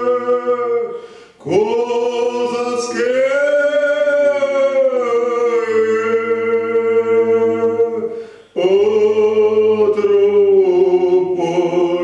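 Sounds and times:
two men singing a cappella: 0:00.0 - 0:12.0.

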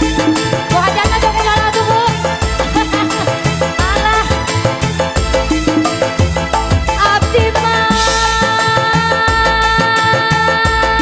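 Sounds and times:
deep steady drum beat: 0:00.0 - 0:11.0
sliding melodic lead line: 0:00.0 - 0:11.0.

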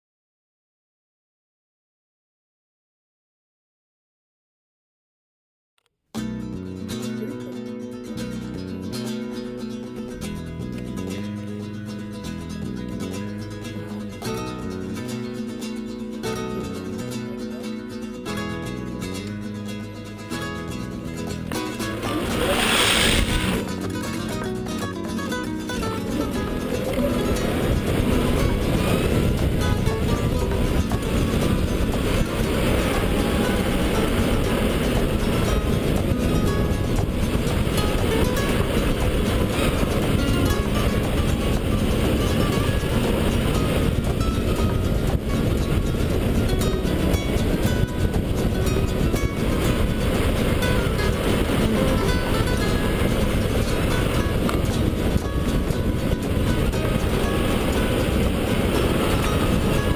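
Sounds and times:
music: 0:06.2 - 0:59.9
wind and tyre noise: 0:18.2 - 0:59.9
loud rush of noise: 0:21.0 - 0:59.9.

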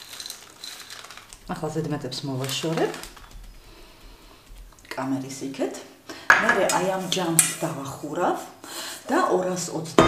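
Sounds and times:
person speaking: 0:01.4 - 0:10.0
kitchenware clattering: 0:06.3 - 0:07.5.

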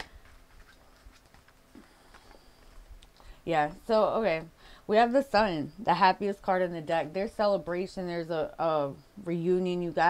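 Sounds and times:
cards ticking and rustling: 0:00.0 - 0:03.2.

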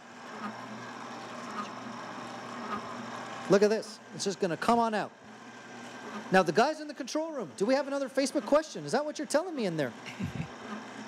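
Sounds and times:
ice cream maker motor humming: 0:00.0 - 0:11.0.

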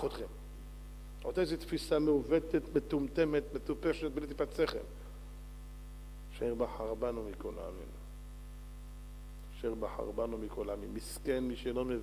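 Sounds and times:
man speaking: 0:00.0 - 0:00.4, 0:01.2 - 0:05.0, 0:06.3 - 0:08.0, 0:09.5 - 0:12.0
electrical mains hum: 0:00.0 - 0:12.0.

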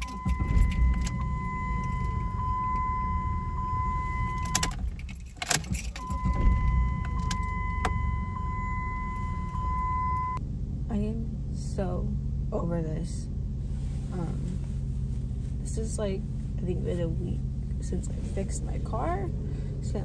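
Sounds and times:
sharp clicks and rattles: 0:00.0 - 0:02.4, 0:04.1 - 0:08.1
electronic warning tone: 0:00.0 - 0:04.8, 0:05.9 - 0:10.4
car engine idling: 0:00.0 - 0:20.0.

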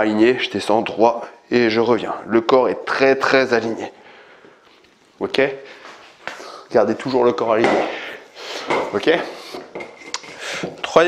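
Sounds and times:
breath: 0:04.0 - 0:04.8, 0:05.6 - 0:06.7, 0:07.8 - 0:08.8, 0:10.2 - 0:10.8.

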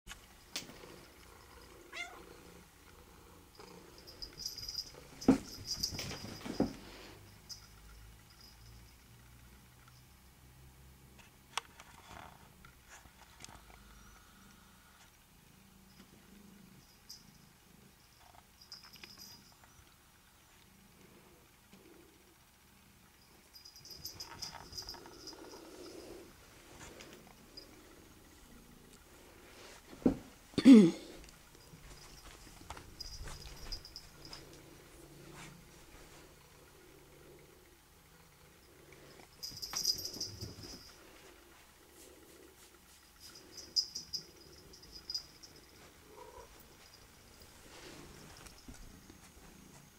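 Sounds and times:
cat meowing: 0:01.9 - 0:02.2
cat collar tag jingling: 0:03.6 - 0:09.0, 0:18.1 - 0:19.8, 0:23.4 - 0:26.2, 0:31.6 - 0:34.8, 0:39.1 - 0:41.0, 0:43.1 - 0:49.1
rustling: 0:39.0 - 0:49.9.

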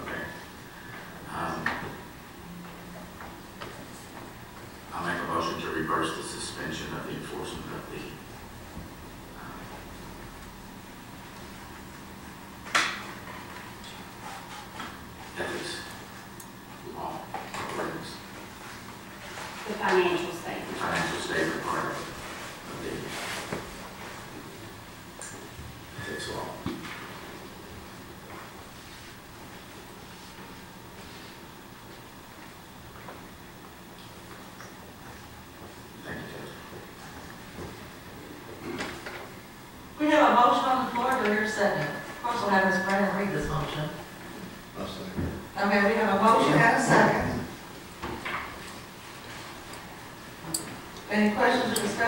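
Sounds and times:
faint room noise: 0:00.0 - 0:52.0.

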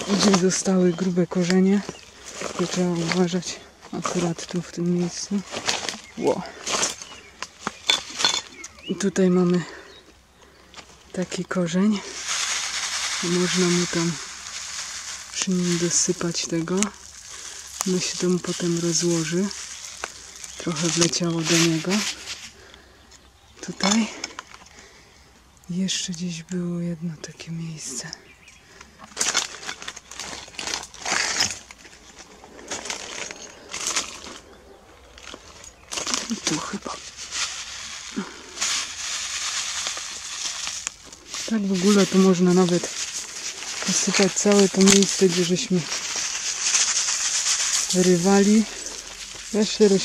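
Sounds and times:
footsteps crunching on rubble: 0:00.0 - 0:24.9, 0:28.0 - 0:50.0.

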